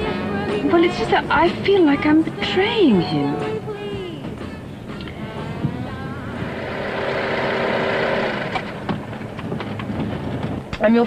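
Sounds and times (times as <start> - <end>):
vehicle drone: 0.0 - 10.8.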